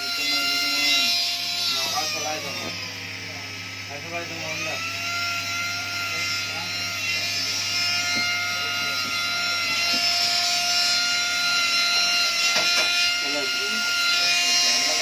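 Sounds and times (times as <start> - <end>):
rotary tool whining: 0.0 - 15.0.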